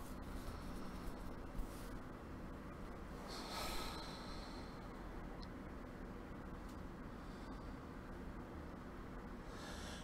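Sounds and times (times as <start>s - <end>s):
man breathing: 3.2s - 5.0s.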